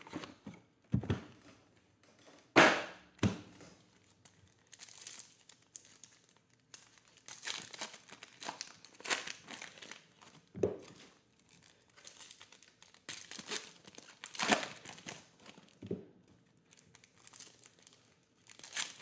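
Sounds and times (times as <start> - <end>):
foil pack tearing and crinkling: 4.0 - 15.8, 16.7 - 19.0.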